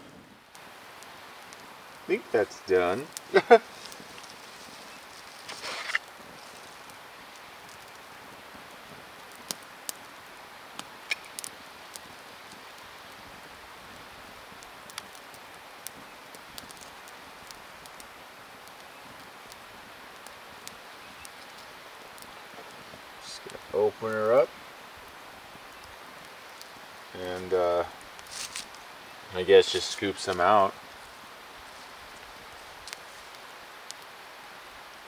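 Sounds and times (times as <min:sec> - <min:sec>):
campfire crackling and popping: 0:00.0 - 0:35.0
soft fire hiss: 0:00.0 - 0:35.0
short rustle: 0:03.4 - 0:06.8, 0:28.3 - 0:28.9.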